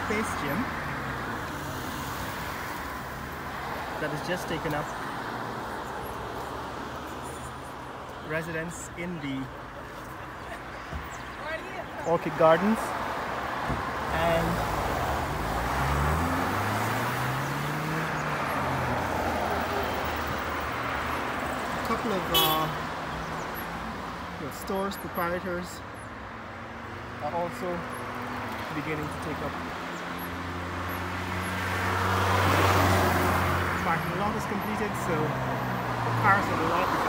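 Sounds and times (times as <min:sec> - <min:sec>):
tyre and road noise: 0:00.0 - 0:37.0.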